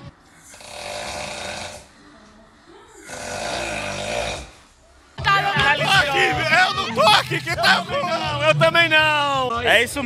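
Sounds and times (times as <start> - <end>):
man snoring: 0.3 - 2.0, 3.0 - 4.7.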